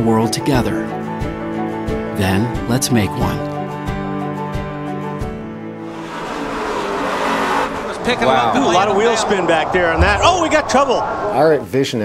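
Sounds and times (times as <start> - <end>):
race cars at speed: 5.8 - 11.4
tyres squealing and skidding: 5.8 - 11.4.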